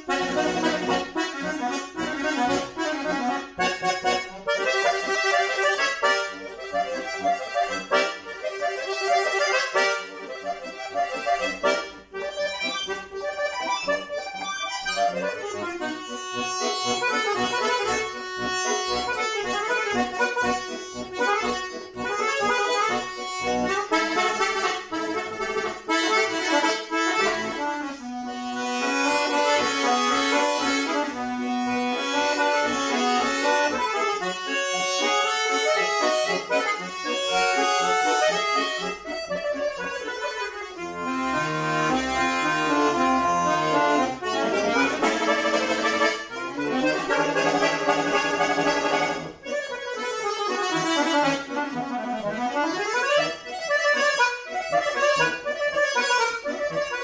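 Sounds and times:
button accordion playing fast runs: 0.0s - 57.0s.

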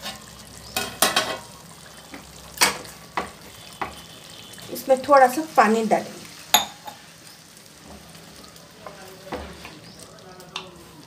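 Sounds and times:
curry sizzling in a pot: 0.0s - 11.0s.

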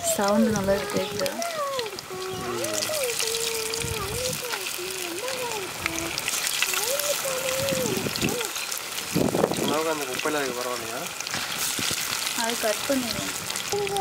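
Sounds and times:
fish sizzling in hot oil: 0.0s - 14.0s.

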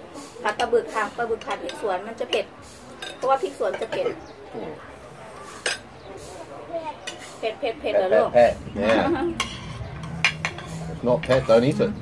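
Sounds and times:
faint low voices: 0.0s - 12.0s
cutlery clinking on plate: 5.6s - 5.9s, 8.9s - 11.6s.

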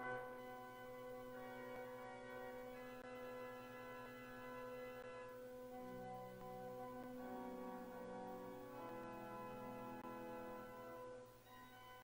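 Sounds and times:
organ playing soft chords: 0.0s - 12.0s.

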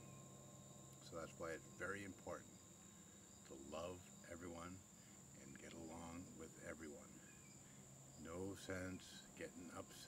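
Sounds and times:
crickets chirping: 0.0s - 10.0s
man speaking quietly: 1.0s - 2.5s, 5.4s - 7.2s, 8.2s - 10.0s.

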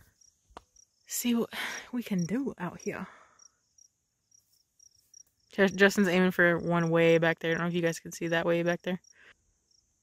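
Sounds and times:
faint crickets chirping: 0.0s - 10.0s.

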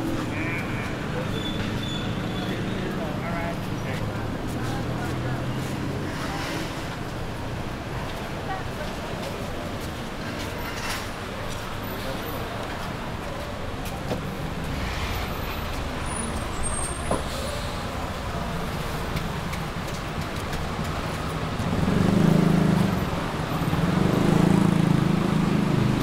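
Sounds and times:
passing road traffic: 0.0s - 26.0s
nearby vehicle engine: 13.9s - 26.0s.

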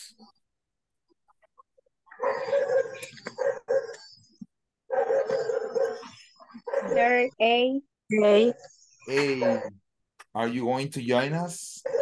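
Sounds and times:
dog barking: 2.1s - 4.0s, 4.9s - 7.0s, 9.2s - 9.8s, 11.8s - 12.0s.

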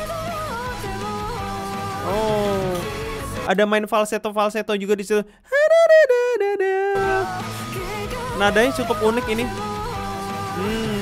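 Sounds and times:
woman singing falsetto: 5.5s - 7.4s.

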